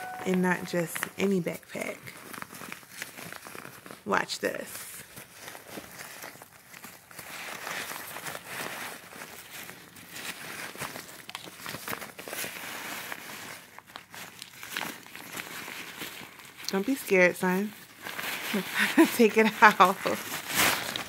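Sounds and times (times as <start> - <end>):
nylon fabric rustling: 0.0 - 21.0.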